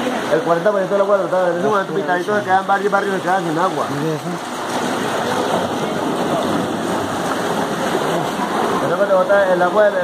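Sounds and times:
water rushing into troughs: 0.0 - 10.0.

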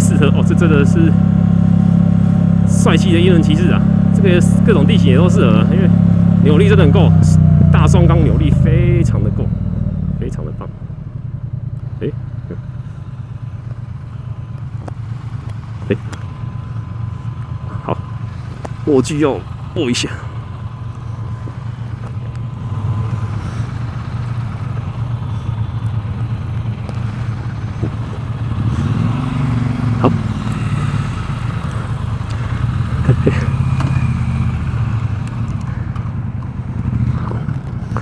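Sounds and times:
motorcycle engine idling: 0.0 - 38.0.

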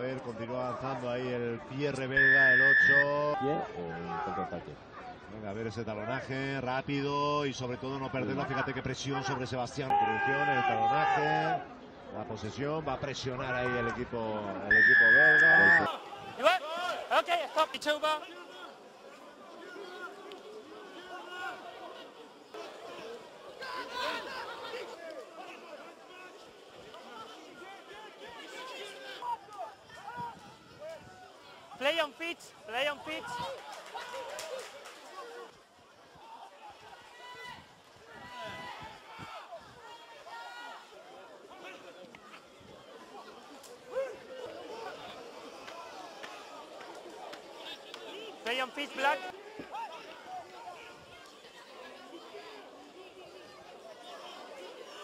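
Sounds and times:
faint voices and chatter: 0.0 - 55.0
sports field ambience: 0.0 - 55.0.

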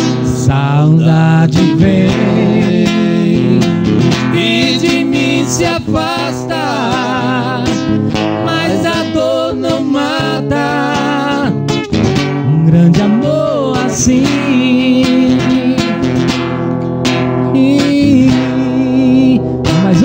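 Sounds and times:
acoustic guitar strumming: 0.0 - 20.0
men singing a ballad: 0.2 - 11.7, 12.4 - 15.9, 17.6 - 20.0.

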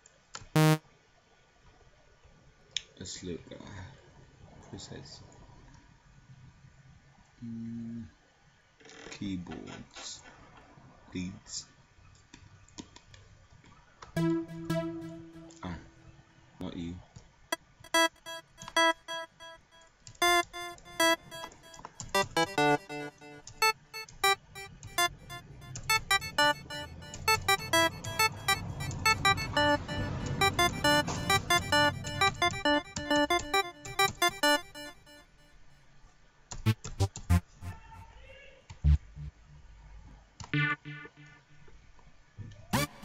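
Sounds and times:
arpeggiated synth runs: 0.6 - 0.8, 14.2 - 15.6, 17.9 - 19.6, 20.2 - 35.2, 36.7 - 38.0, 38.8 - 39.6, 42.8 - 43.0
synth notes: 0.6 - 0.8, 14.2 - 16.0, 17.9 - 19.6, 20.2 - 35.2, 36.7 - 38.0, 38.8 - 39.7, 42.8 - 43.0.

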